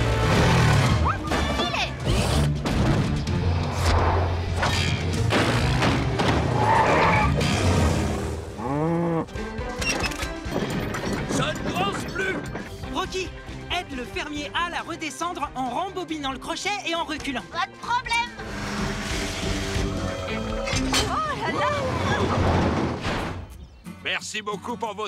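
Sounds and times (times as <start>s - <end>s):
action background music: 0.0s - 8.6s, 9.2s - 23.6s.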